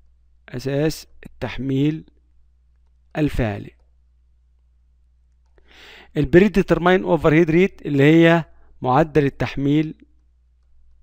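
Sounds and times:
faint steady low hum: 0:00.0 - 0:11.0
person speaking: 0:00.4 - 0:02.2, 0:02.9 - 0:04.0, 0:05.7 - 0:10.3
in-breath through mouth: 0:05.6 - 0:06.1.

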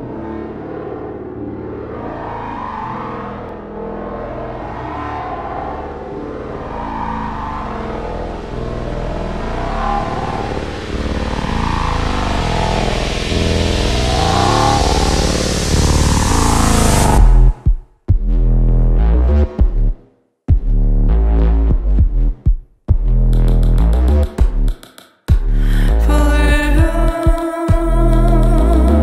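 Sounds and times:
swirling sweeping synth tones: 0:00.0 - 0:17.6
deep synthesizer bass notes: 0:00.0 - 0:29.0
rushing noise swell: 0:05.2 - 0:17.7.

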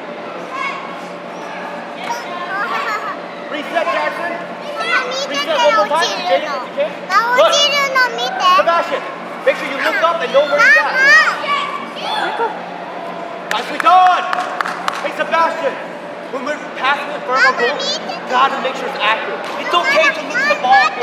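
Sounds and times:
adult voices: 0:01.2 - 0:14.3, 0:14.9 - 0:21.0.

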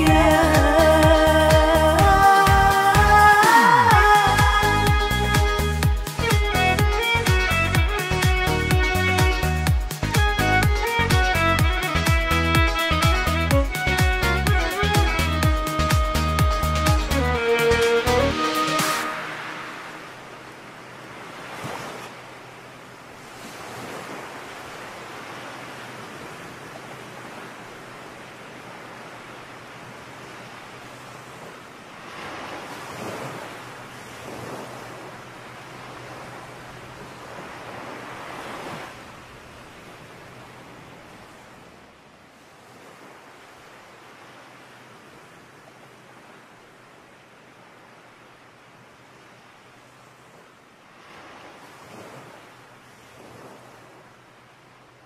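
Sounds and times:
sea waves washing onto beach: 0:00.0 - 0:55.0.

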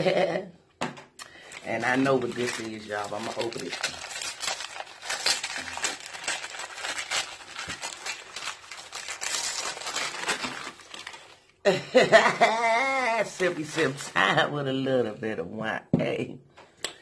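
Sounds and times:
person laughing: 0:00.0 - 0:00.6, 0:11.7 - 0:13.4
wrapping paper crinkling: 0:01.3 - 0:11.6, 0:12.4 - 0:14.3.

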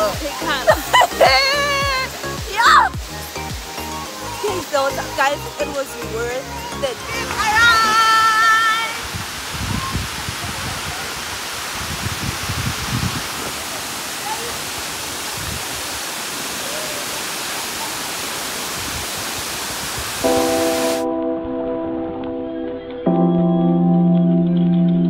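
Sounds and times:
waterfall rushing: 0:00.0 - 0:21.1
person shouting with delight: 0:01.2 - 0:02.9, 0:16.6 - 0:17.3
sustained musical chords: 0:20.2 - 0:25.0.

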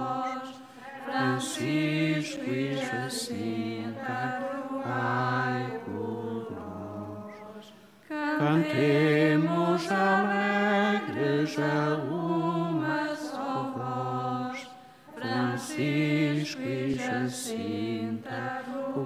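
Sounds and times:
voices singing a slow hymn: 0:00.0 - 0:19.0.

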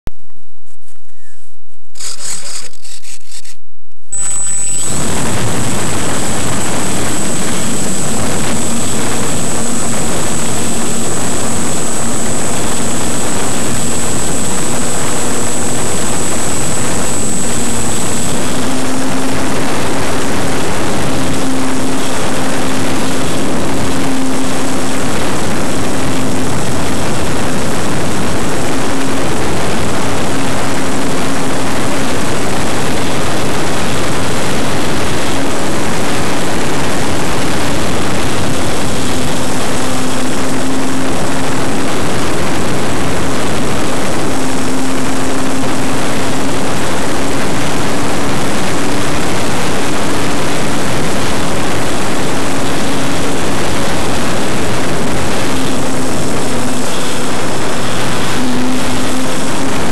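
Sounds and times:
thin high whine: 0:00.2 - 0:59.9
model airplane propeller drone: 0:01.1 - 0:03.6, 0:04.2 - 0:59.9
wind rushing noise: 0:04.1 - 0:59.9.

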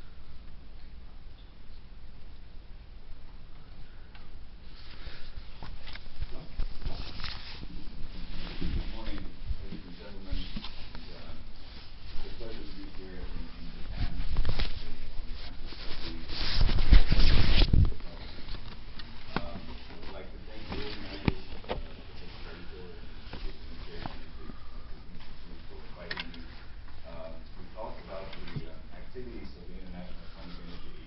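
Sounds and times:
camera rubbing against fabric: 0:04.6 - 0:26.8, 0:27.8 - 0:31.0
camera handling rustle: 0:05.6 - 0:07.7.

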